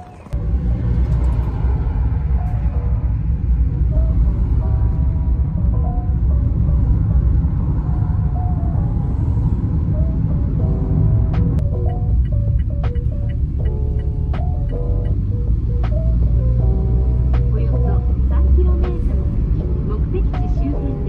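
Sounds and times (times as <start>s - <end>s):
car engine and road noise: 0.0s - 21.0s
background music: 2.4s - 21.0s.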